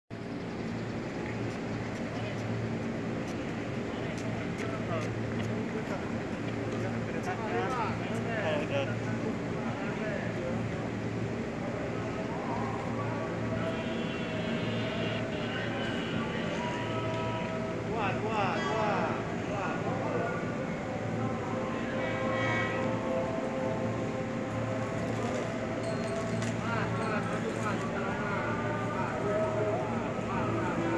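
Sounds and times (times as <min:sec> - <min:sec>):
constant background noise: 0:00.1 - 0:30.9
faint distant voices: 0:00.2 - 0:30.9.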